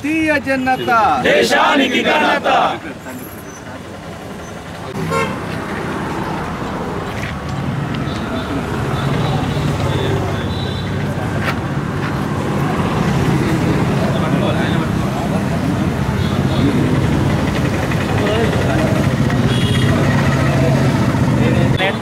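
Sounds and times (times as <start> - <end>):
crowd talking: 0.0 - 22.0
car horn tooting: 5.0 - 5.5, 19.4 - 20.0
vehicle engine running: 12.1 - 21.8.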